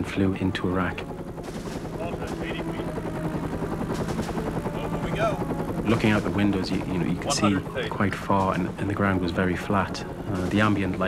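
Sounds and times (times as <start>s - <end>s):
helicopter rotor and engine drone: 0.0s - 11.0s.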